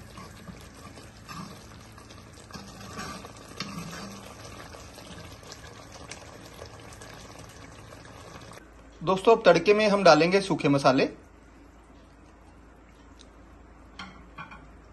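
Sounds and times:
ladle stirring against pan: 0:00.0 - 0:07.5
masala sizzling and bubbling: 0:00.0 - 0:14.9.

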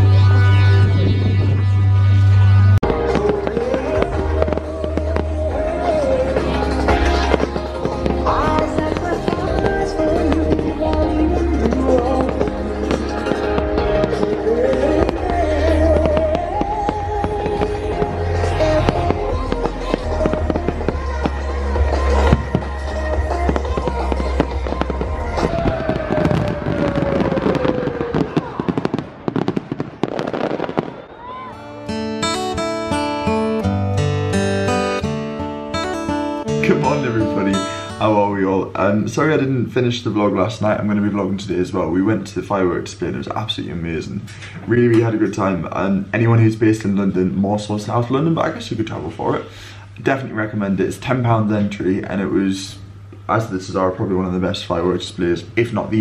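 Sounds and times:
music with deep bass: 0:00.0 - 0:27.5
fireworks bangs and crackles: 0:02.8 - 0:31.7.

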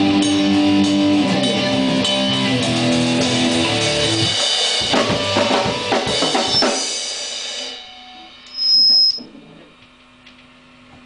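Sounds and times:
rock band chord and cymbals: 0:00.0 - 0:09.2
high-pitched feedback squeal: 0:06.5 - 0:06.8, 0:07.9 - 0:09.3
low amplifier hum: 0:07.7 - 0:11.0.

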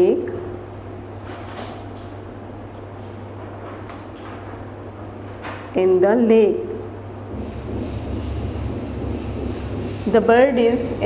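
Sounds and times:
low microphone rumble: 0:06.9 - 0:11.0.

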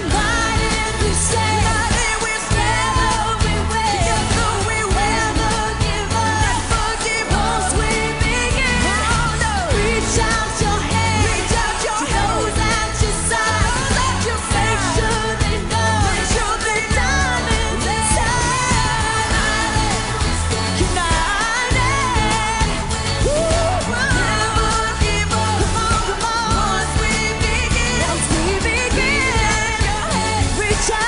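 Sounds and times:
live pop band playing: 0:00.0 - 0:31.0
male and female vocals: 0:00.0 - 0:31.0.

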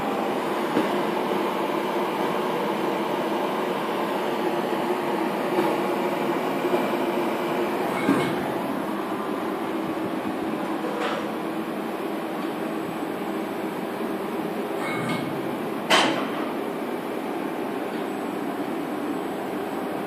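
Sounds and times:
workshop machinery hum: 0:00.0 - 0:20.0.

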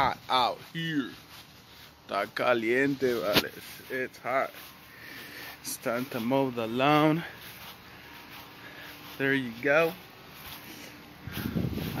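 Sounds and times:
low rumbling buffeting on microphone: 0:11.2 - 0:12.0.

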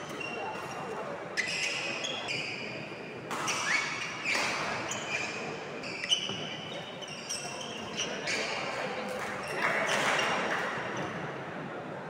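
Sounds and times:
shoes squeaking on floor: 0:00.0 - 0:10.4.

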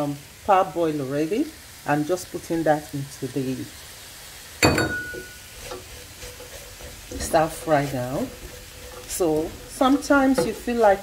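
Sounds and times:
vegetables sizzling in pot: 0:00.0 - 0:11.0
clink against metal pot: 0:04.6 - 0:05.4.

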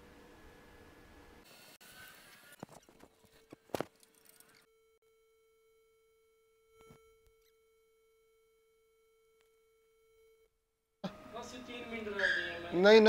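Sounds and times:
faint electronic tone: 0:04.1 - 0:12.8.

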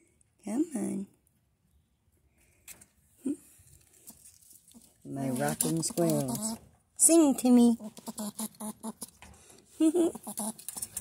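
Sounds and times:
person speaking: 0:05.0 - 0:07.9
squirrel calling: 0:07.7 - 0:09.2, 0:10.1 - 0:10.8.

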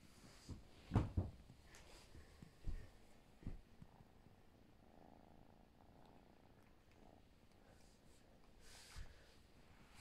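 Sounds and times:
kitten purring: 0:02.3 - 0:08.9.

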